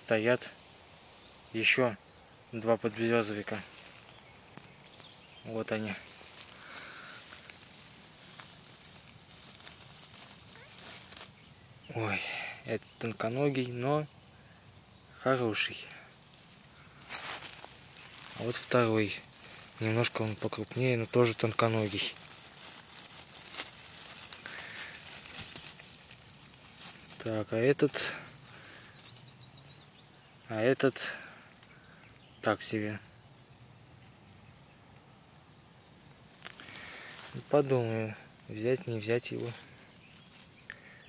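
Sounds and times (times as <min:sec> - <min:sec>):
rustling of grass and leaves: 0:00.0 - 0:41.0
light crackles: 0:01.6 - 0:11.7, 0:15.8 - 0:41.0
crisp snaps: 0:03.5 - 0:05.1, 0:06.0 - 0:11.4, 0:16.2 - 0:27.3, 0:36.3 - 0:38.6.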